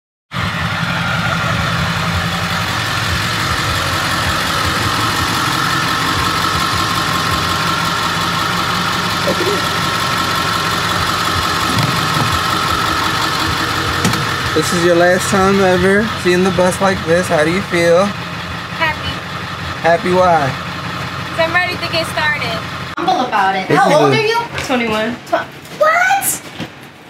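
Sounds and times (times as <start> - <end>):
constant whine: 0.3 - 24.8
bus engine idling: 0.4 - 26.2.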